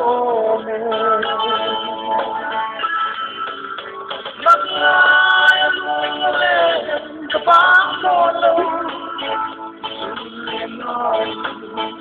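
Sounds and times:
person singing over music: 0:00.0 - 0:12.0.

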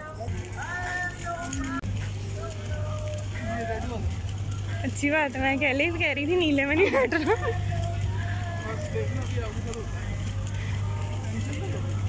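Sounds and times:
faint music: 0:00.0 - 0:12.0
indistinct voices: 0:00.0 - 0:12.0.

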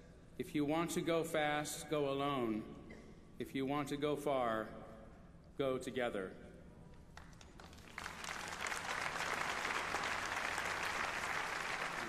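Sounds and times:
audience applauding: 0:07.2 - 0:12.0.

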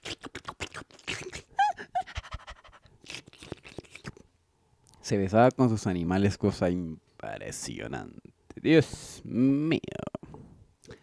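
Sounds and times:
man making kissing noises: 0:00.0 - 0:04.3.

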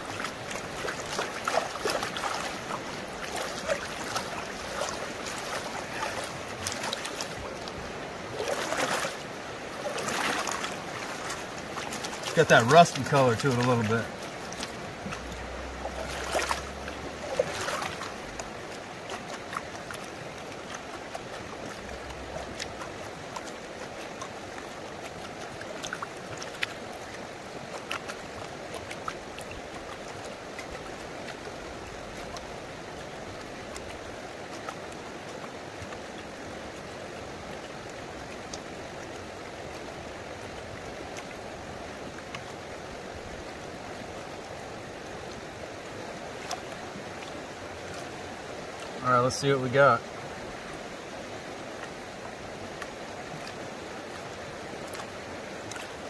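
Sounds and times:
river water rushing: 0:00.0 - 0:56.0
water trickling: 0:00.0 - 0:56.0.

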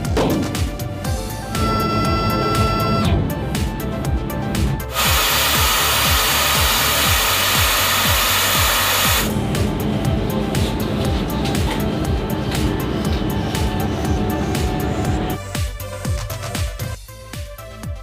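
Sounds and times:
background music with a beat: 0:00.0 - 0:18.0
machine running with rushing noise: 0:04.9 - 0:15.3.

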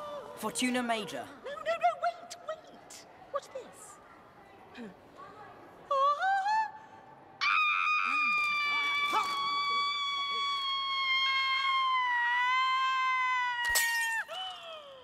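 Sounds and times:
wine glass breaking: 0:13.6 - 0:14.6.

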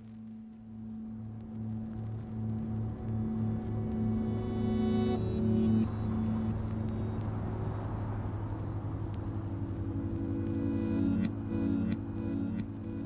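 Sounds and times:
faint music: 0:00.0 - 0:13.0
car road and engine noise: 0:01.4 - 0:13.0.

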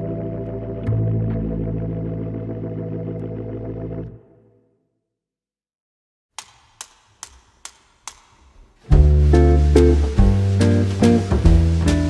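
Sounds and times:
sharp percussive clicks: 0:06.4 - 0:08.8
pop band with bass and guitar: 0:08.9 - 0:12.0.

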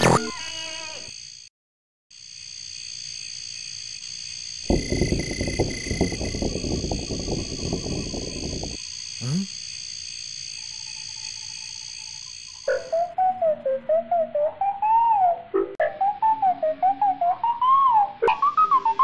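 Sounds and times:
wavering whistle-like melody: 0:13.0 - 0:19.0.

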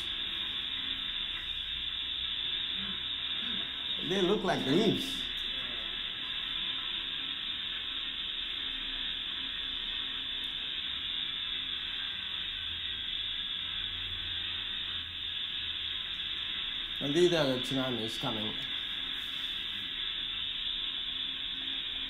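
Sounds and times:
steady rushing hiss: 0:00.0 - 0:22.0.

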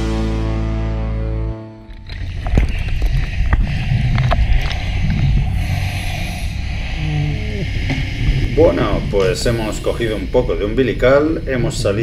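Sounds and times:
low underwater rumble: 0:01.8 - 0:12.0.

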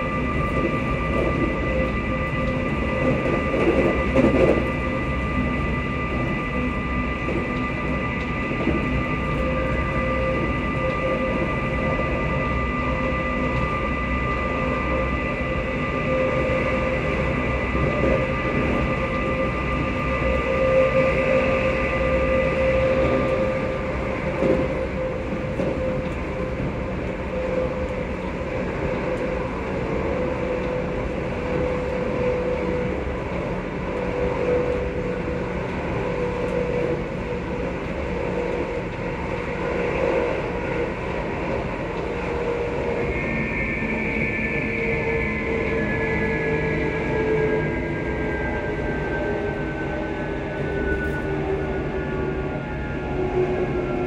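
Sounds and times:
constant hum: 0:00.0 - 0:54.0
train wheels rumbling: 0:00.0 - 0:54.0.

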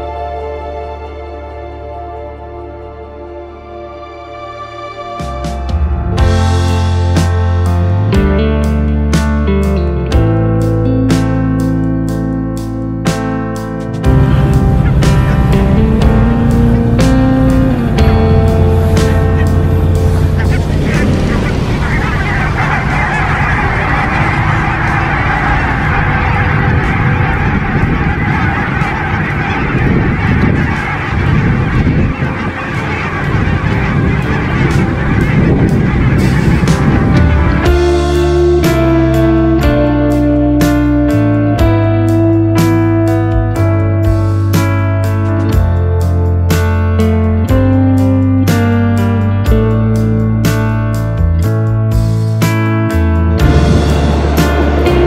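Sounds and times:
music: 0:00.0 - 0:55.0
geese honking: 0:14.1 - 0:46.2, 0:53.4 - 0:55.0.

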